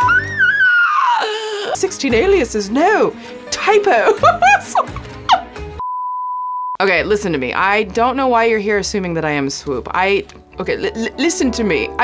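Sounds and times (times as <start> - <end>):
person laughing: 4.1 - 5.5
censor bleep: 5.8 - 6.8.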